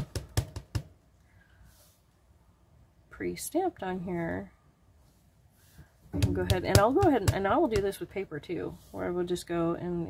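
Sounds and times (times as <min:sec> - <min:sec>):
stamp tapping on ink pad: 0:06.2 - 0:07.9.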